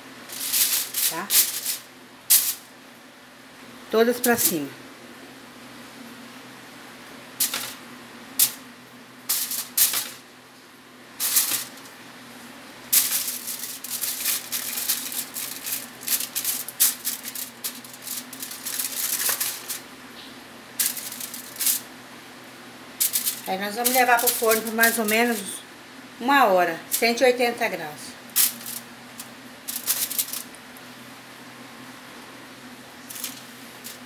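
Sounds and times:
low steady hum: 0:00.0 - 0:34.0
aluminium foil crinkling: 0:00.3 - 0:02.6, 0:11.2 - 0:11.9, 0:12.9 - 0:19.9, 0:20.8 - 0:21.9, 0:23.0 - 0:25.6, 0:28.3 - 0:30.6, 0:33.0 - 0:34.0.

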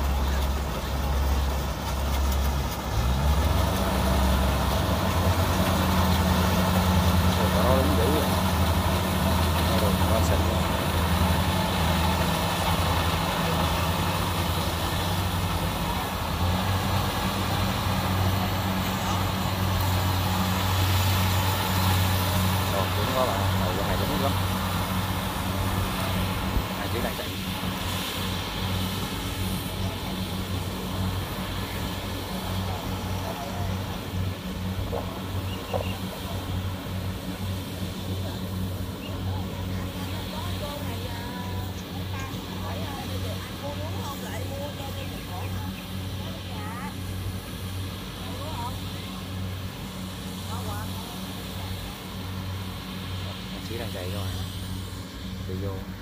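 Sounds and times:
diesel engine hum: 0:00.0 - 0:56.0.

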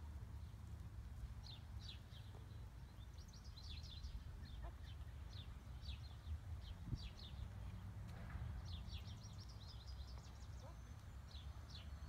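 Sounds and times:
songbirds chirping: 0:00.0 - 0:12.0.

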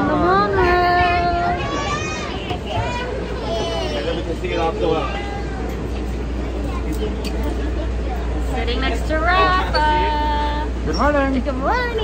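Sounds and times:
muffled voices: 0:00.0 - 0:12.0
transit vehicle interior hum: 0:00.0 - 0:12.0.

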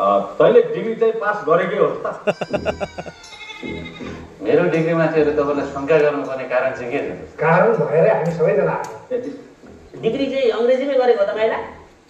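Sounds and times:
goat bleating: 0:02.3 - 0:04.2.

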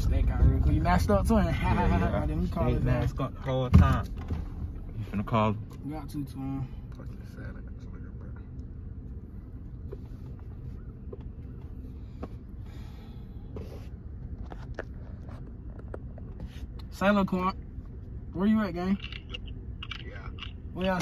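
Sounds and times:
car interior rumble: 0:00.0 - 0:21.0.

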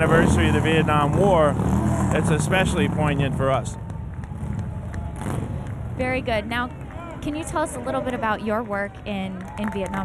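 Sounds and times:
city street rumble: 0:00.0 - 0:10.0
vehicle passing: 0:00.0 - 0:10.0.

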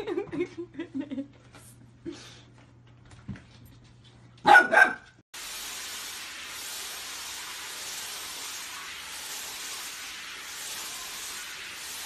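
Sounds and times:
puppy barking: 0:04.4 - 0:05.1
steady hiss: 0:05.4 - 0:12.0.

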